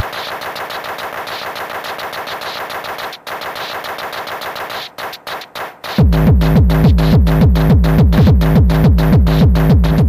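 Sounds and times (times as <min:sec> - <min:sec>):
electronic stuttering drum roll: 0:00.0 - 0:10.0.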